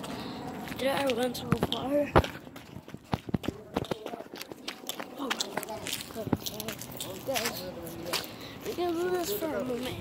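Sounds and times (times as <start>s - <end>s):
footsteps: 0.0s - 10.0s.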